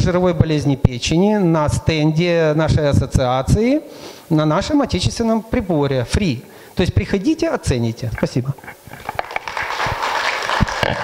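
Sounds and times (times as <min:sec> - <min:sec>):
audience applauding: 0:09.0 - 0:11.0.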